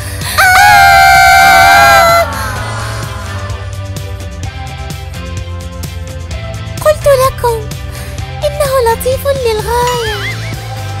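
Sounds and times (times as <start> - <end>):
background music: 0.0 - 11.0
girl screaming in fright: 0.2 - 3.6.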